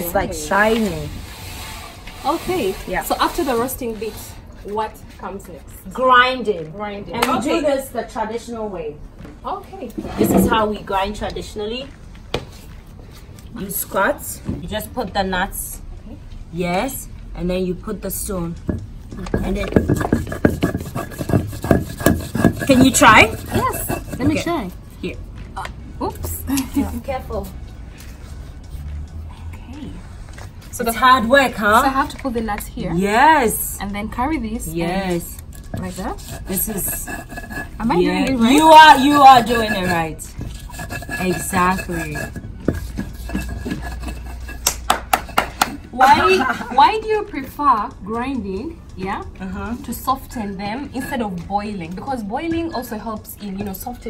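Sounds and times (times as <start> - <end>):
stone grinding nuts: 18.6 - 24.9, 34.7 - 46.3, 49.9 - 51.4
stone-on-stone knocks: 18.7 - 24.4.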